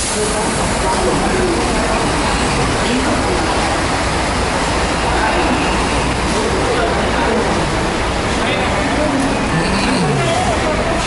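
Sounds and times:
busy terminal hall din: 0.0 - 11.0
engine and traffic noise: 0.0 - 11.0
people talking indistinctly: 0.4 - 11.0.

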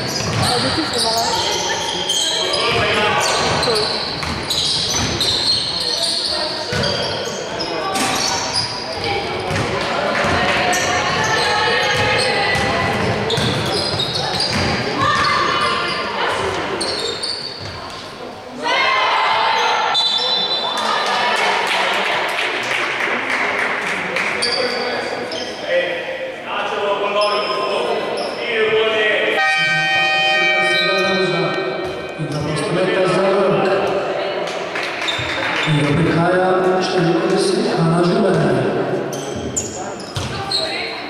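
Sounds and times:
sneakers squeaking: 0.0 - 18.3, 19.3 - 21.0, 24.4 - 25.7, 27.2 - 28.4, 30.6 - 32.8, 35.0 - 36.0, 38.3 - 41.0
basketball bouncing on wooden court: 0.1 - 1.3, 2.7 - 5.3, 6.7 - 7.0, 9.4 - 10.5, 11.1 - 15.3, 40.2 - 40.5
people shouting in a hall: 18.5 - 22.1.

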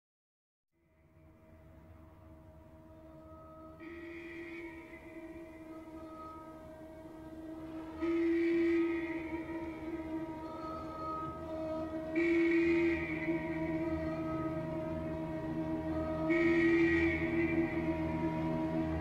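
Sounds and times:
steady low tone: 0.8 - 19.0
held horn-like chords: 3.1 - 19.0.

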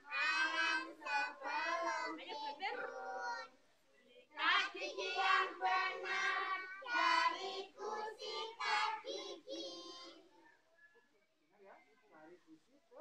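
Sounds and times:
young children singing: 0.0 - 3.6, 4.4 - 10.2.

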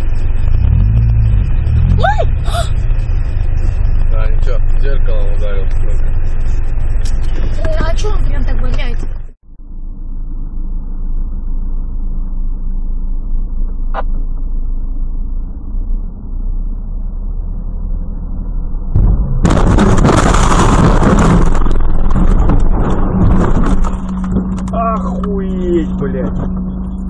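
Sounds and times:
car road and engine rumble: 0.0 - 27.0
loud burst of noise with thud: 18.9 - 24.0.

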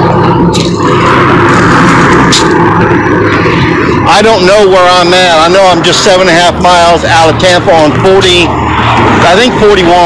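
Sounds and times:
highway traffic rushing: 0.0 - 10.0.

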